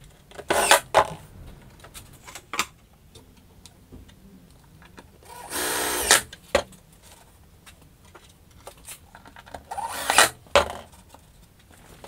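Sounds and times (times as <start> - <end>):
drill motor whine: 5.3 - 6.2.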